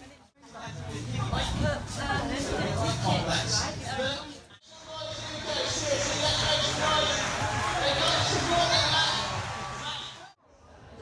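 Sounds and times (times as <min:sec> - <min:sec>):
people chatting: 0:00.0 - 0:11.0.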